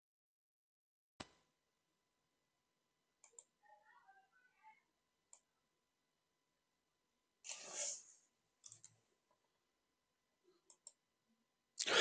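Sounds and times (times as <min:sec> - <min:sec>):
computer mouse clicks: 0:03.2 - 0:03.5, 0:08.6 - 0:09.0, 0:10.6 - 0:11.0.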